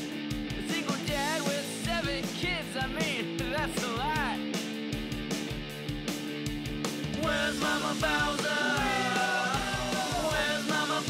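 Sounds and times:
guitar: 0.0s - 11.0s
steady drum beat: 0.0s - 11.0s
person singing: 0.7s - 4.0s, 7.2s - 11.0s.

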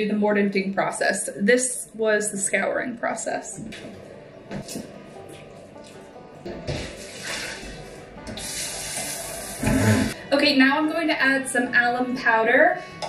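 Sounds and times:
pot thump: 6.5s - 7.0s
water pouring into a sink: 6.8s - 7.8s, 8.4s - 10.0s.

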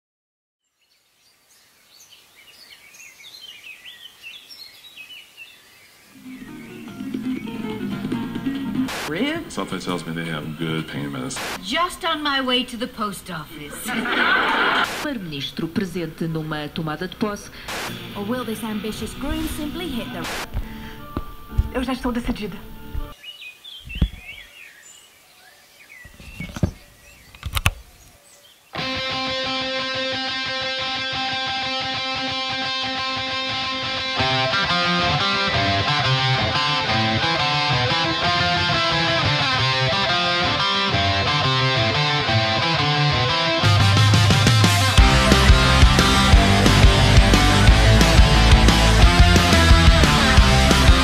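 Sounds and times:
birds chirping: 0.6s - 29.6s
soft outdoor background hiss: 0.6s - 38.8s.

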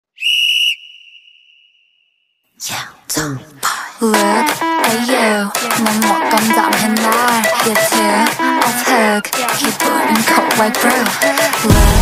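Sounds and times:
high steady whistle tone: 0.1s - 2.4s.

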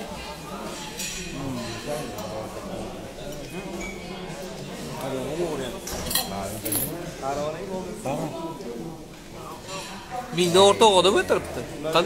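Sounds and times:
cutlery or dishes clinking: 0.6s - 2.6s, 5.7s - 7.0s.

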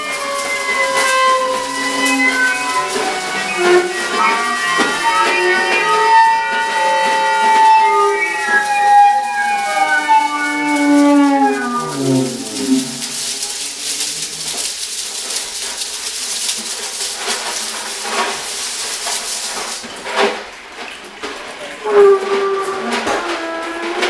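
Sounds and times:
howling saxophone tones sliding down: 0.0s - 14.4s, 21.8s - 24.0s
rattling percussion: 0.0s - 24.0s.

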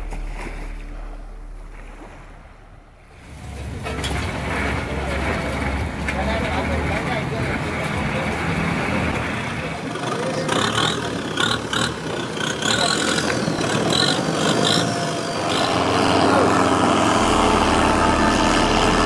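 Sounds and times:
boat engine droning: 0.0s - 19.0s
street market bustle: 0.0s - 19.0s.

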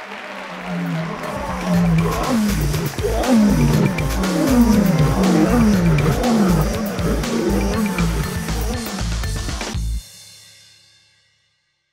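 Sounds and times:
low falling growl-like tones: 0.0s - 9.7s
music with pulsing bass beat: 0.9s - 10.0s.

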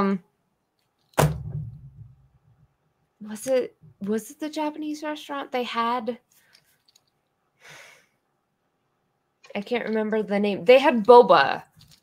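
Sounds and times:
breathy exhale: 7.6s - 8.2s
person speaking: 9.4s - 11.8s.

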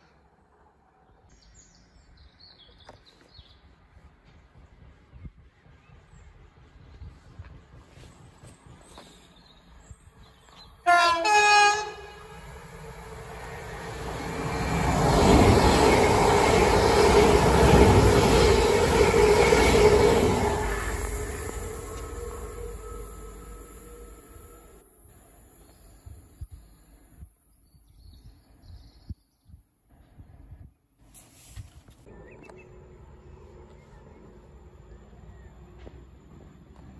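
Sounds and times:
train rumble and wheel noise: 3.0s - 27.2s
two-tone train horn: 10.8s - 12.4s.

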